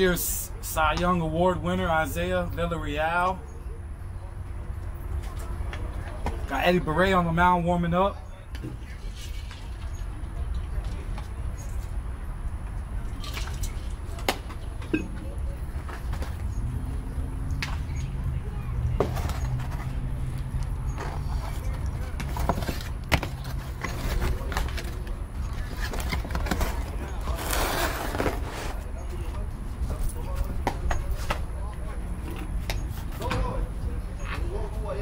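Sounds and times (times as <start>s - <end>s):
distant voices: 0.0s - 35.0s.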